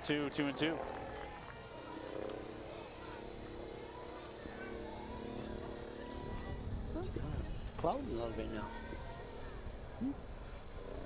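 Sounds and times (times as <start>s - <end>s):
faint scattered voices: 0.0s - 11.0s.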